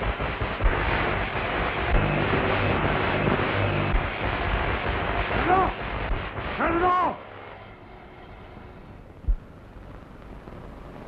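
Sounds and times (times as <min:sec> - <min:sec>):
film soundtrack hiss: 0:00.0 - 0:11.0
faint low hum: 0:00.6 - 0:11.0.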